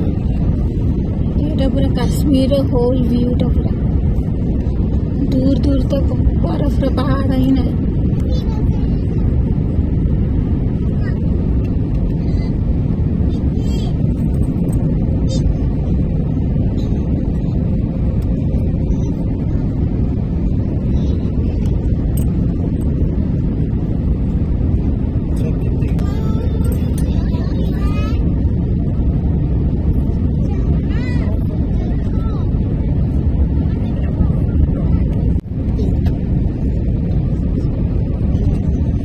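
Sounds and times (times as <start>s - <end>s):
jet engines rumbling: 0.0s - 39.0s
rushing air: 0.0s - 39.0s.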